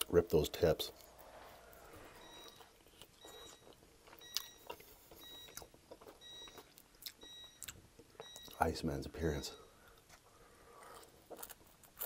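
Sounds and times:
faint high electronic beep: 0.9 - 8.7
wet chewing and lip smacks: 2.4 - 8.6.

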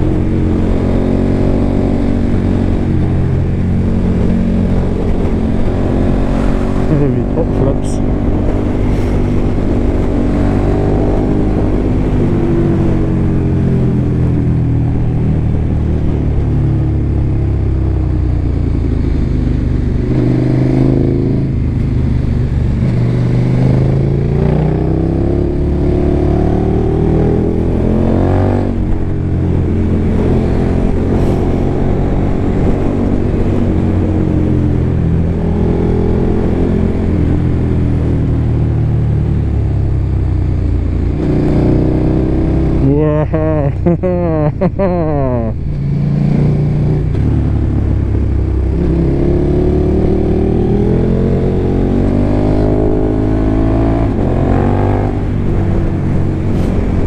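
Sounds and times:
motorcycle engine revving: 18.4 - 57.0.

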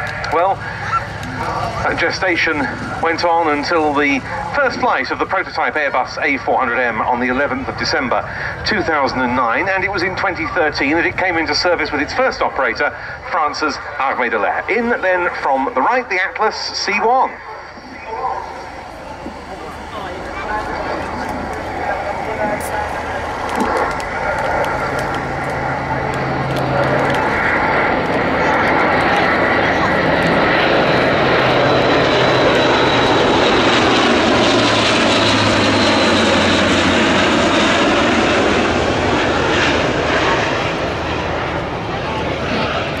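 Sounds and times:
turboprop aircraft flying over: 0.0 - 43.0.

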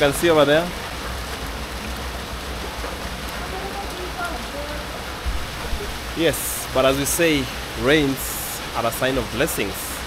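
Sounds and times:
heavy rain pouring: 0.0 - 10.0.

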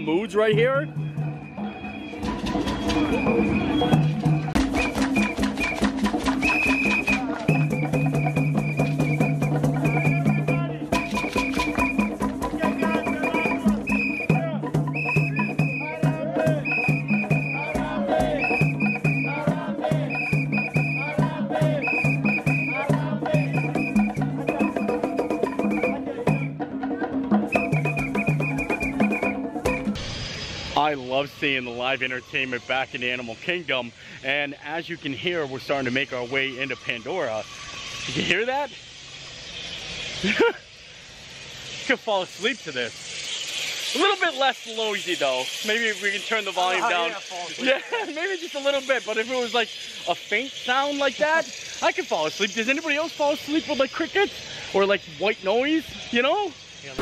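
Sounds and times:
rapid hand-drum strokes: 0.0 - 33.7, 34.7 - 54.3.

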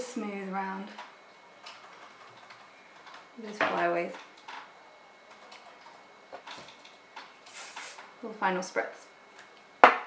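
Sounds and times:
bristle brush strokes on hair: 7.5 - 8.0.

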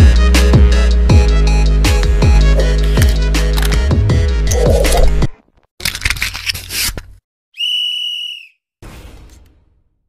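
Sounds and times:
high electronic whistle tone: 7.6 - 8.6.

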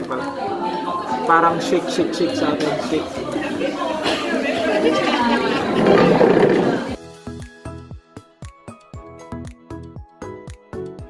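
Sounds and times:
crowd chatter: 0.0 - 7.0.

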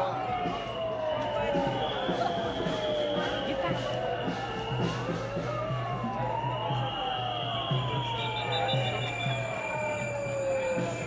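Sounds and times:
low thumping beat: 0.0 - 11.0
marching crowd: 0.0 - 11.0
siren wailing: 0.0 - 11.0.

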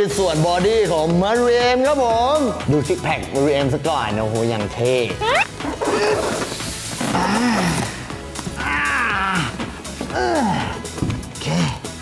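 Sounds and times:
styrofoam scraping against cardboard: 5.6 - 8.1.

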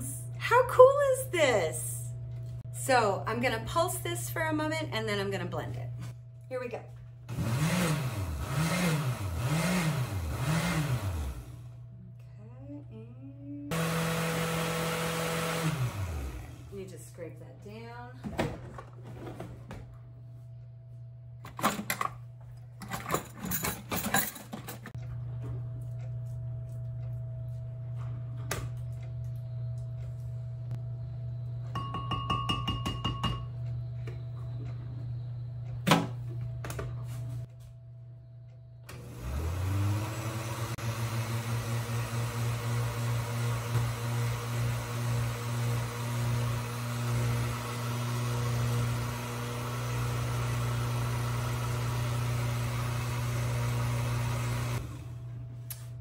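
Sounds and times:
blender motor running: 7.3 - 11.8, 13.7 - 16.8, 38.9 - 55.2.

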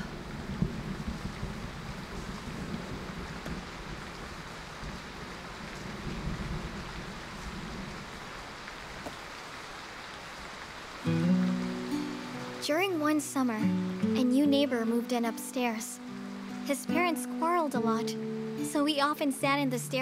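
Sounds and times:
steady background hiss: 10.6 - 20.0.

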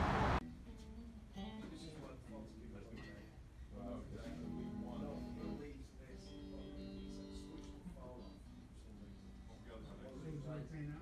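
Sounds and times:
loud street noise: 0.0 - 0.4
people talking: 1.6 - 11.0
guitar playing: 4.1 - 9.8.

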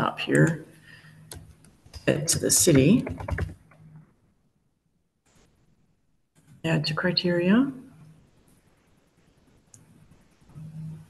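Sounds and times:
computer keyboard keystrokes: 1.3 - 2.0, 2.7 - 3.7.

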